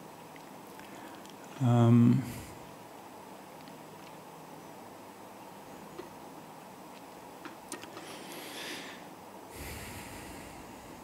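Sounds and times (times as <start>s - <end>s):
man breathing in through nose: 8.0s - 11.0s.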